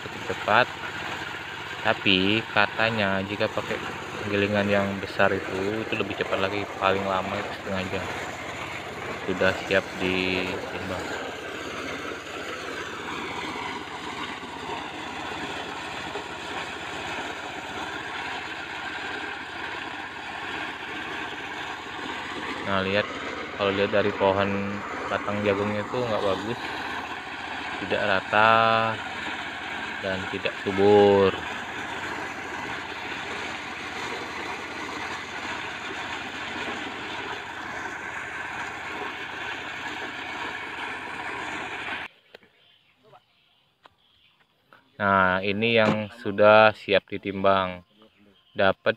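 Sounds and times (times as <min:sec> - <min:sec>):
corn sheller engine running: 0:00.0 - 0:42.1.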